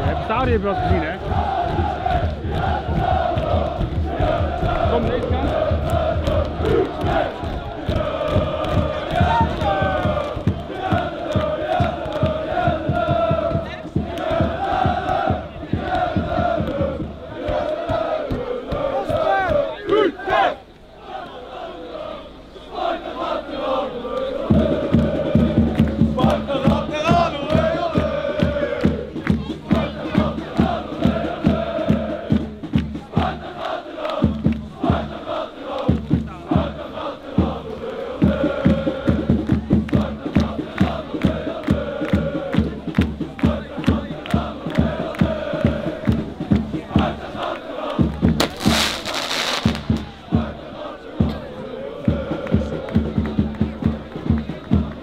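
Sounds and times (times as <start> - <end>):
rhythmic low thumps: 0.0 - 19.8, 24.4 - 55.0
crowd chanting in unison: 0.0 - 55.0.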